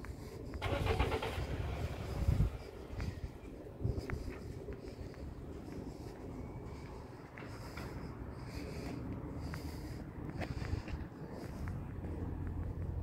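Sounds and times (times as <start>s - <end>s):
steady low rumble: 0.0s - 13.0s.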